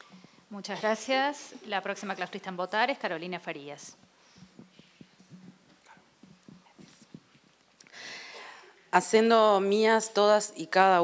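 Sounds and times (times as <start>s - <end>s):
microphone handling knocks: 4.4s - 7.4s.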